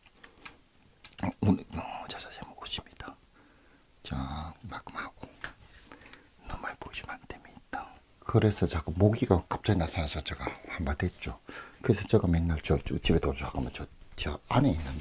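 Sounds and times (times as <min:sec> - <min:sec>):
person whispering and muttering: 0:01.1 - 0:03.3, 0:04.0 - 0:05.6, 0:06.4 - 0:15.0.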